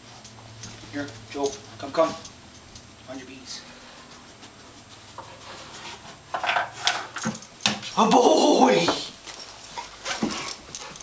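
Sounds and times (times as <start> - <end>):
light clinks: 0.2 - 2.9, 9.2 - 11.0.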